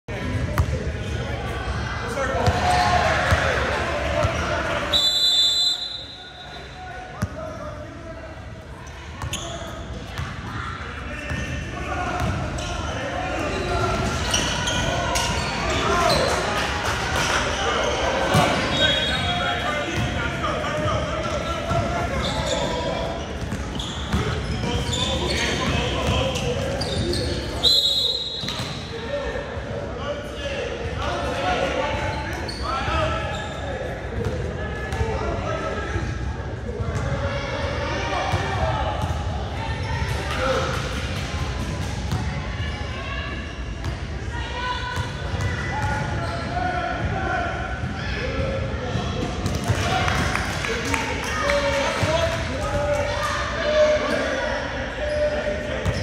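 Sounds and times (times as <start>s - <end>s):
referee's whistle: 4.9s - 6.8s, 18.7s - 19.4s, 26.8s - 28.6s.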